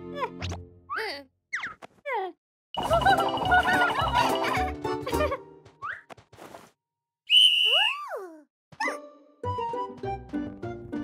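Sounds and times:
shrill whistle blast: 0:07.3 - 0:08.1.

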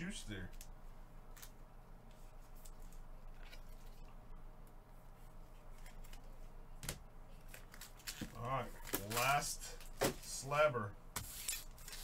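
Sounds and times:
man talking: 0:08.4 - 0:11.0.

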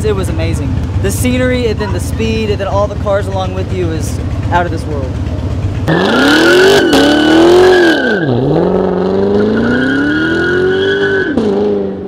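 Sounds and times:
car engine revving: 0:00.0 - 0:12.0
tyre squeal: 0:06.4 - 0:08.6, 0:09.2 - 0:11.7.

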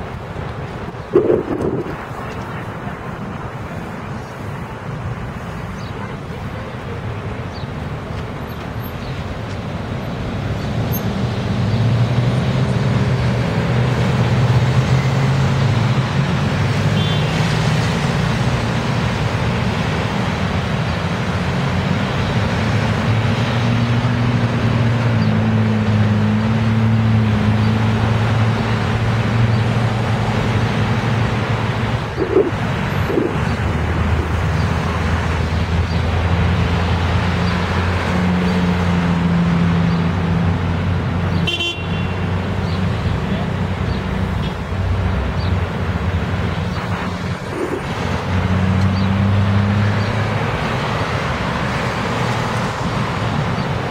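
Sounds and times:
traffic engine drone: 0:00.0 - 0:53.9.

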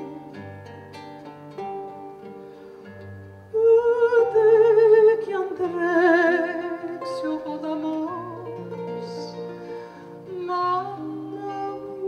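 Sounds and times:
woman singing with vibrato: 0:00.0 - 0:00.4, 0:03.5 - 0:12.0
classical guitar: 0:00.0 - 0:12.0.

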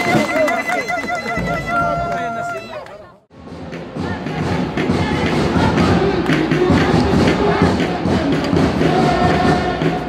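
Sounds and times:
women ululating: 0:00.0 - 0:03.1
crowd talking: 0:00.0 - 0:10.0.

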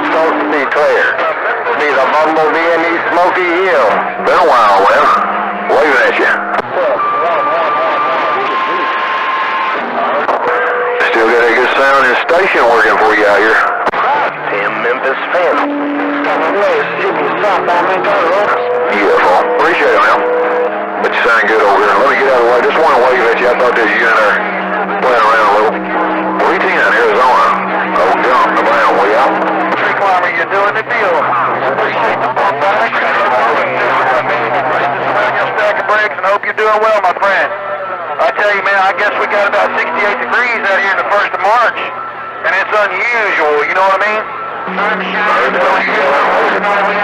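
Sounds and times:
higher tone: 0:00.0 - 0:36.2, 0:37.4 - 0:47.0
steady radio whistle: 0:00.0 - 0:47.0
low humming tones: 0:02.1 - 0:11.8, 0:13.4 - 0:35.7, 0:44.2 - 0:47.0.

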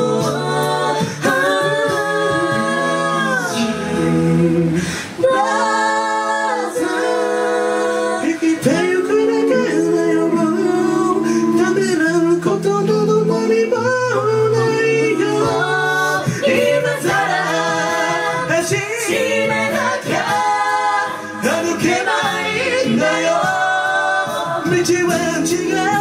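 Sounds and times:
a cappella group singing: 0:00.0 - 0:26.0
sung bass line: 0:00.0 - 0:26.0.

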